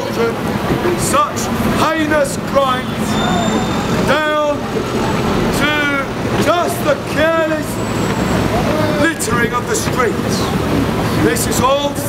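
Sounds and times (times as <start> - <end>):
city traffic: 0.0 - 12.0.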